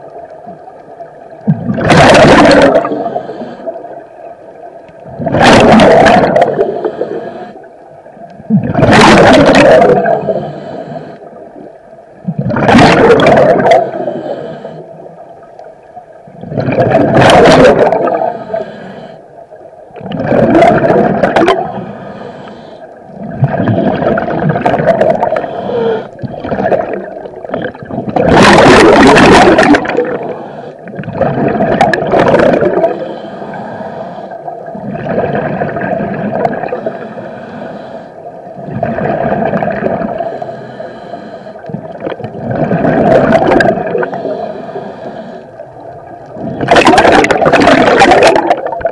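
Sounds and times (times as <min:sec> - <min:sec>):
gurgling rush of exhaled bubbles: 0:01.4 - 0:03.8, 0:05.0 - 0:07.2, 0:08.4 - 0:10.4, 0:12.2 - 0:14.2, 0:16.3 - 0:18.5, 0:20.0 - 0:21.9, 0:23.1 - 0:33.0, 0:34.6 - 0:37.0, 0:38.6 - 0:40.3, 0:41.7 - 0:44.3, 0:46.0 - 0:48.9.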